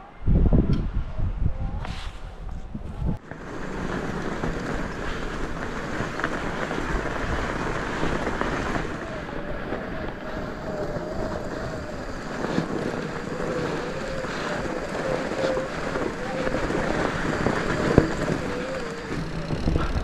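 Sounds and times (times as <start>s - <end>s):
wind rushing over microphone: 0.0s - 20.0s
tyres on packed snow: 3.2s - 20.0s.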